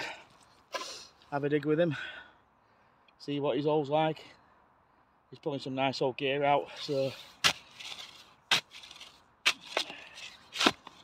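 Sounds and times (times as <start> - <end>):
digging tool striking earth: 6.8 - 11.0.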